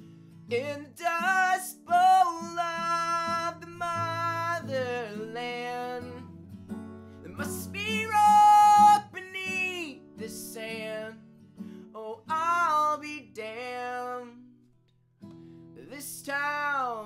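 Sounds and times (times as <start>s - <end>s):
acoustic guitar strumming: 0.0s - 14.6s, 15.2s - 17.0s
person singing folk song: 0.2s - 14.6s, 15.7s - 17.0s.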